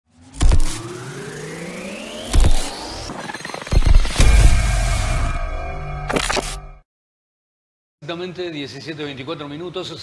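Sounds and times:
rising pitch sweep: 0:00.1 - 0:06.0
heavy bass hits: 0:04.1 - 0:05.2.

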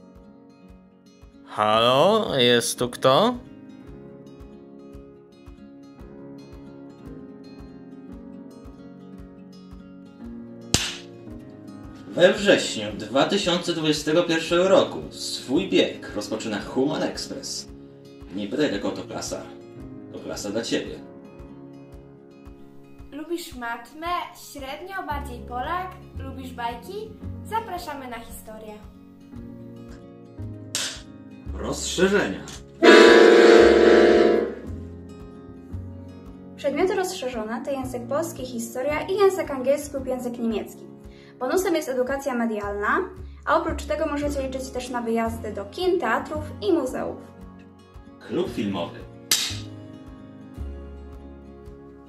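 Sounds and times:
acoustic guitar music: 0:00.0 - 0:38.1, 0:43.0 - 0:52.0
clapperboard snapping shut: 0:10.8 - 0:11.1, 0:30.8 - 0:31.0, 0:49.3 - 0:49.7
accordion held chord: 0:32.8 - 0:34.7.

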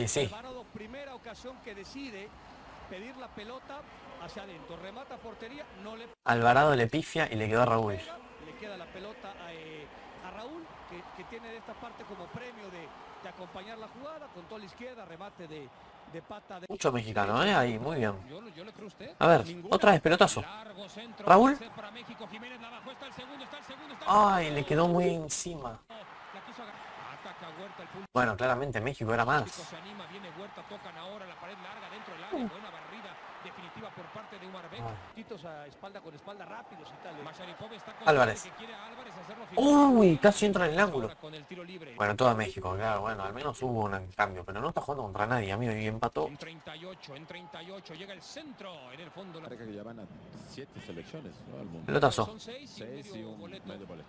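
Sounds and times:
commentator talking: 0:00.0 - 0:02.3, 0:02.9 - 0:49.7
stadium crowd noise: 0:00.0 - 0:54.0.

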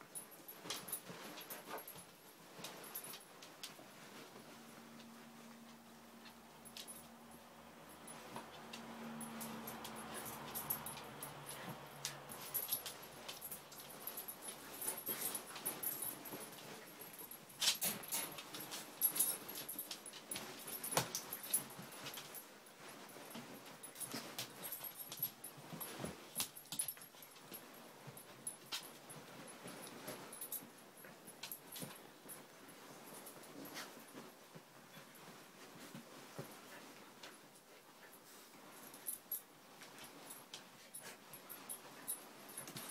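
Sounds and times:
puppies scuffling on bedding: 0:00.0 - 0:42.9.

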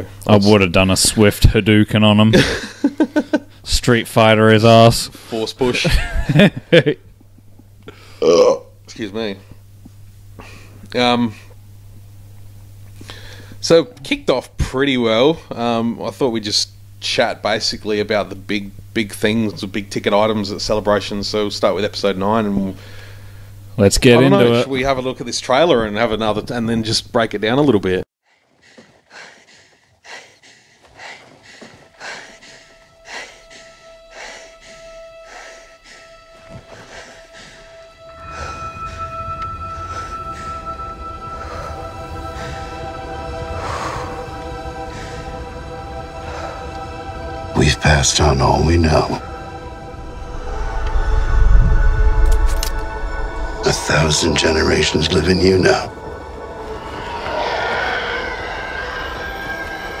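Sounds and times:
quick hard breaths: 0:28.2 - 0:39.0
held orchestral note: 0:31.8 - 1:00.0
deep low rumble: 0:31.9 - 1:00.0
higher held note: 0:31.9 - 1:00.0
rising whine: 0:32.0 - 1:00.0.

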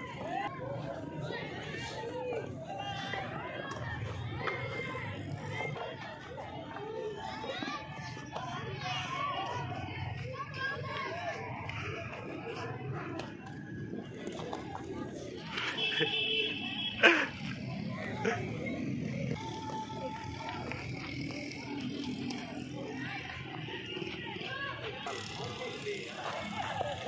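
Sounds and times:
group of people chattering: 0:00.0 - 0:27.0.

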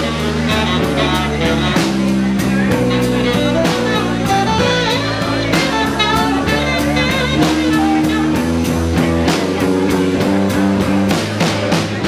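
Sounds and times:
saxophone: 0:00.0 - 0:11.1
drum kit steady beat: 0:00.0 - 0:12.0
electric guitars: 0:00.0 - 0:12.0.

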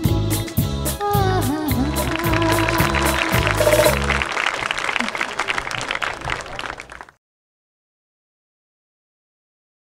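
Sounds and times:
live band with drums: 0:01.7 - 0:04.3
audience applause: 0:01.8 - 0:07.2.

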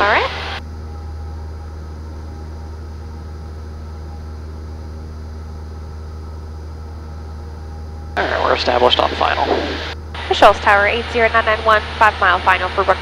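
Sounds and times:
airplane engine drone: 0:00.0 - 0:13.0.

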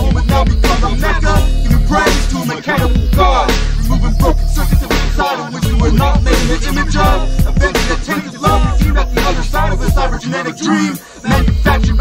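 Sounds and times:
drums and deep bass: 0:00.0 - 0:10.2, 0:11.3 - 0:12.0
rapping over a beat: 0:00.0 - 0:12.0.

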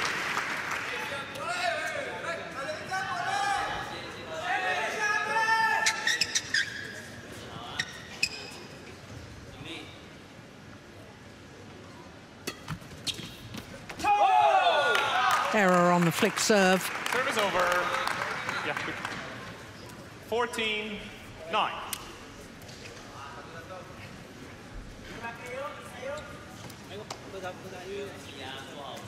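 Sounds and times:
voices: 0:15.5 - 0:16.9.

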